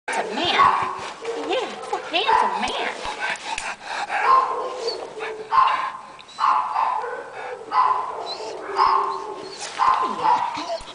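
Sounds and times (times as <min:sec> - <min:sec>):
dog whining barks: 0:04.2 - 0:10.9.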